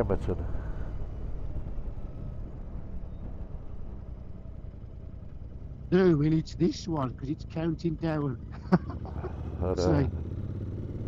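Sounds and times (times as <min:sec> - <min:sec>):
motorcycle engine running: 0:00.2 - 0:11.0.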